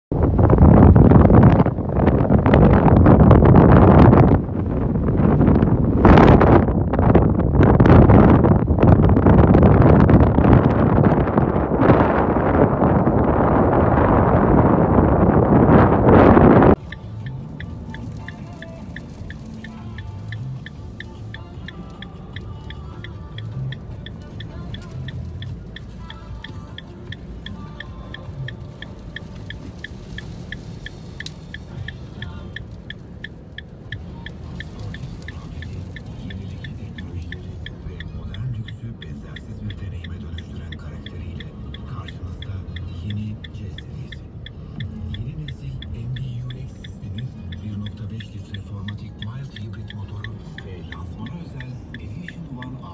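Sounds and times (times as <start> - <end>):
wind buffeting microphone: 0.1 - 39.0
car interior hum: 0.1 - 52.9
faint music: 16.7 - 52.9
steady ticking: 16.7 - 52.9.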